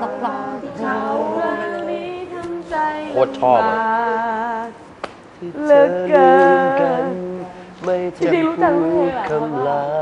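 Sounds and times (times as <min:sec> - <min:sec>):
voices singing pop song: 0:00.0 - 0:10.0.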